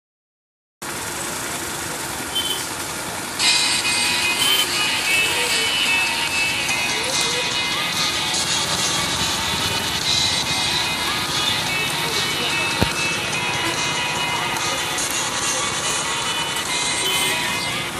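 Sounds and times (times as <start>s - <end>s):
street traffic: 0.8s - 17.9s
people's voices: 3.1s - 17.9s
music playing: 3.4s - 17.9s.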